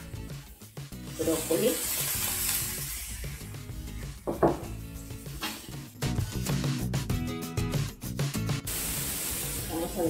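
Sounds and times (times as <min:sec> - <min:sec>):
vegetables sizzling in a hot pan: 0:00.6 - 0:06.6, 0:08.6 - 0:10.0
bowl knocking on counter: 0:04.3 - 0:04.7.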